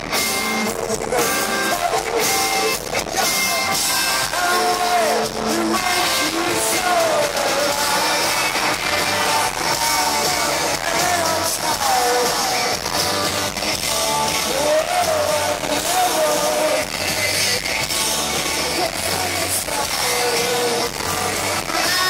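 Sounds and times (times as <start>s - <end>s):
live rock band playing: 0.0s - 22.0s
man singing: 0.0s - 22.0s.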